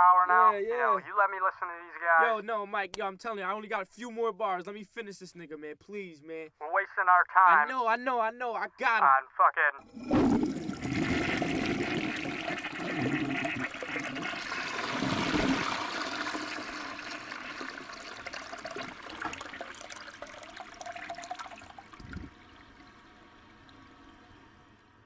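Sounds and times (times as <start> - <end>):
toilet flushing: 9.8 - 25.0.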